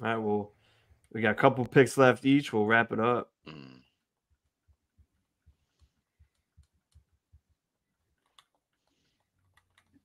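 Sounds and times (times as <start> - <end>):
computer mouse clicks: 5.7 - 7.2, 8.2 - 10.0.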